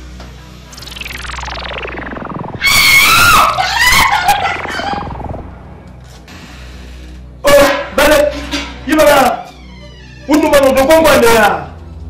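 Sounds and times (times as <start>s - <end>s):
tone sliding down in pitch: 0.7s - 6.0s
wavering scream: 0.8s - 5.6s.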